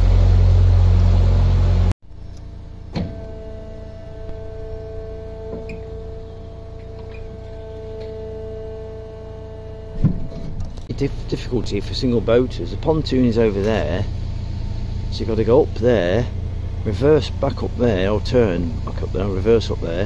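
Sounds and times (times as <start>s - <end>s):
boat engine rumble: 0.0s - 20.0s
hydraulic machinery hum-whine: 0.0s - 20.0s.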